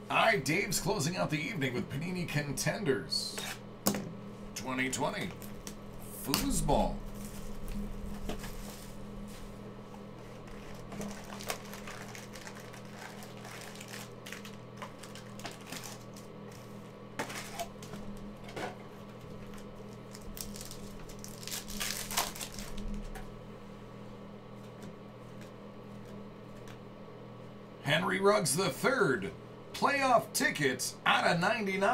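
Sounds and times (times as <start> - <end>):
steady low hum: 0.0 - 31.9
plastic wrap crinkling and tearing: 10.4 - 16.6, 19.4 - 23.2.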